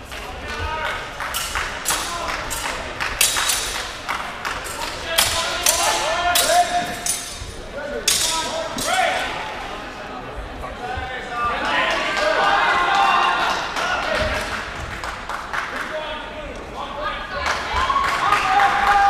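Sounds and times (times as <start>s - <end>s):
steel swords clashing: 1.3s - 9.4s.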